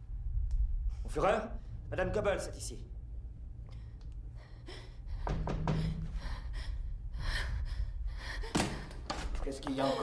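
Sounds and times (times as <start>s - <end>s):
steady low hum: 0.0s - 10.0s
woman gasping breaths: 4.3s - 9.0s.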